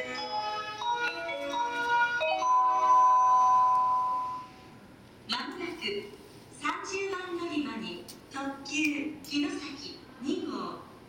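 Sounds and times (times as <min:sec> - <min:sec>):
electronic station chime melody: 0:00.0 - 0:04.7.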